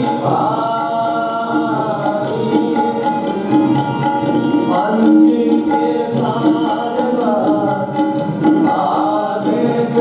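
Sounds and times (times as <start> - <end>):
tabla strokes: 0.0 - 10.0.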